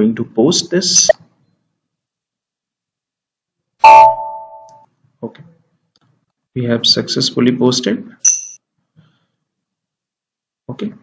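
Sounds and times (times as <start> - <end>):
computer alert chime: 3.8 - 4.8.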